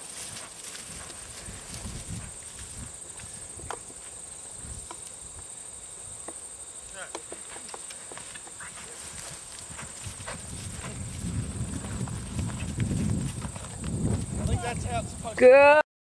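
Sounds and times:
horse hoofbeats on grass: 0.0s - 5.1s, 7.0s - 15.4s.

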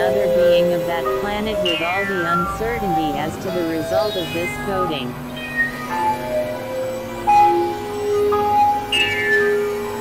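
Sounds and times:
electronic synthesizer drone: 0.0s - 10.0s.

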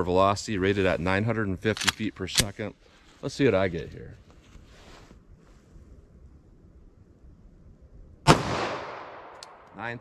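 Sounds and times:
pistol shot with echo: 8.2s - 9.6s.

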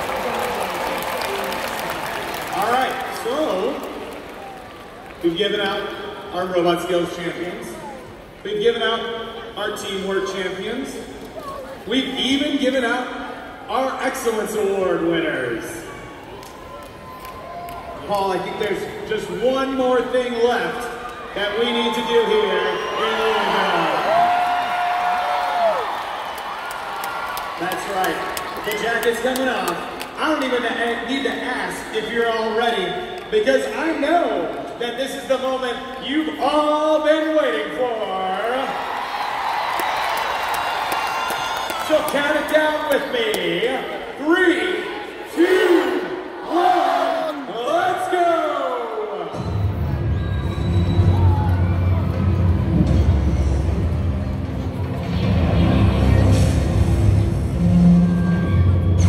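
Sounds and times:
audience noise in a hall: 0.0s - 59.0s
crowd shouting countdown: 43.4s - 52.6s.

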